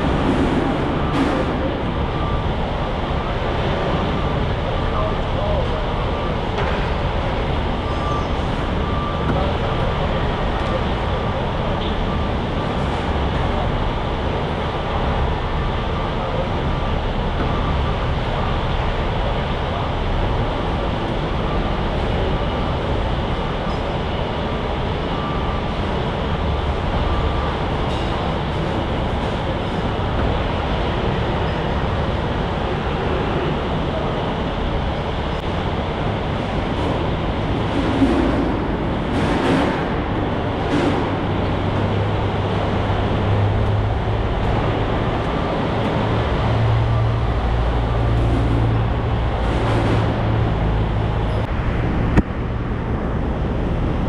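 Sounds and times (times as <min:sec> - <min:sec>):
heavy machinery running: 0:00.0 - 0:54.0.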